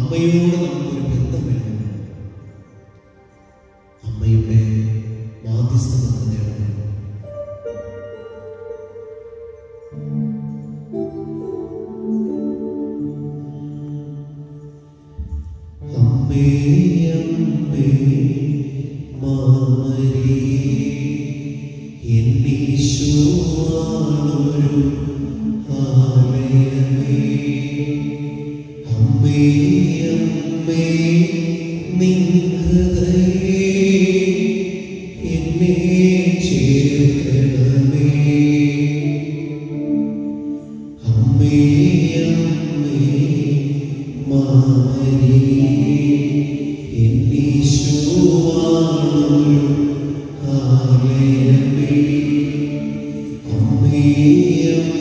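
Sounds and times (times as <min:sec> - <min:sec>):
devotional chant singing: 0:00.0 - 0:06.9, 0:13.5 - 0:40.0, 0:40.9 - 0:55.0.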